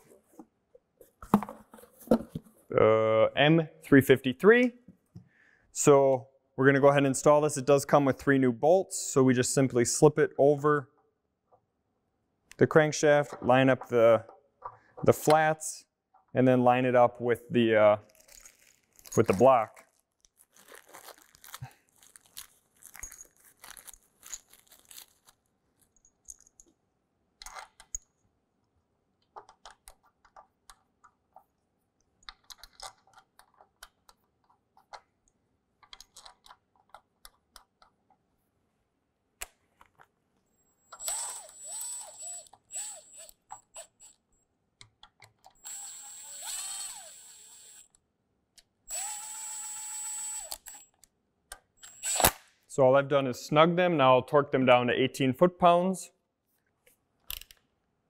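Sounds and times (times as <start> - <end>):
metal parts clicking: 32.2 - 34.2
power tool motor bursts: 45.6 - 47.8, 48.9 - 50.7.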